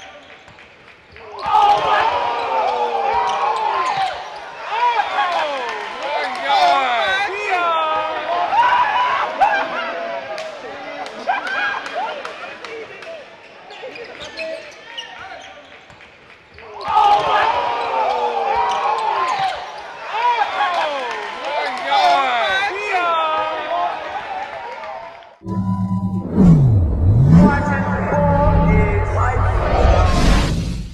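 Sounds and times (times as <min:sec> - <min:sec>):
crowd shouting and hollering: 0:01.3 - 0:12.6, 0:16.8 - 0:25.1.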